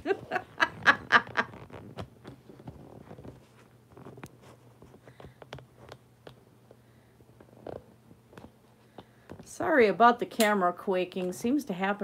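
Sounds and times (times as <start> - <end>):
woman laughing: 0.0 - 1.6.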